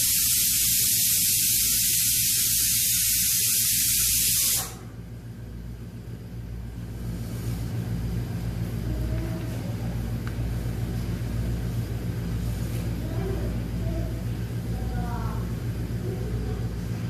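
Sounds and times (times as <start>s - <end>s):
loud hiss: 0.0s - 4.8s
steady low hum: 0.0s - 17.0s.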